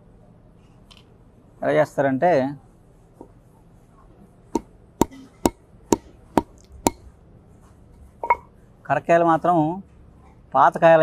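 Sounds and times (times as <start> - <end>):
wooden pestle knocking on stone: 4.6 - 7.0.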